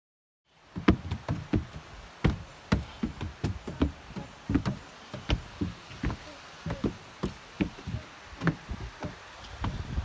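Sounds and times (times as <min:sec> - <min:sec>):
footsteps on wooden stairs: 0:00.7 - 0:10.0.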